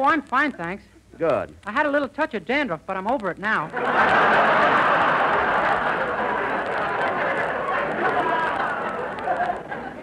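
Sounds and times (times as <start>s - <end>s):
audience laughing: 3.7s - 10.0s.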